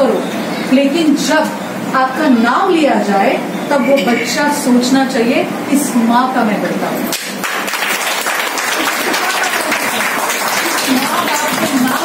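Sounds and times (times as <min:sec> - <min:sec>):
small audience applauding: 0:07.1 - 0:12.0.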